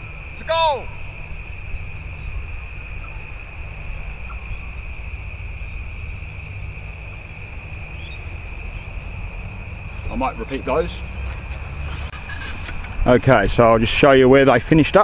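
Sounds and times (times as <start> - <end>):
wind rumble on microphone: 0.0 - 10.1
insects chirring: 0.0 - 15.0.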